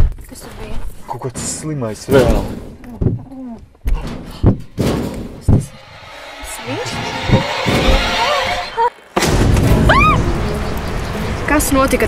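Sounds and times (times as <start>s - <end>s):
heavy thumps: 0.0s - 10.0s
tension score with gliding tones: 4.7s - 12.0s
loud jump-scare burst: 5.7s - 10.6s
rising shriek: 5.7s - 11.0s.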